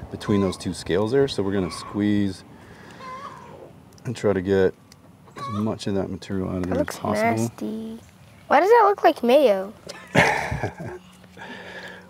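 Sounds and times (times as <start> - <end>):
breathy laughter: 9.9 - 11.7.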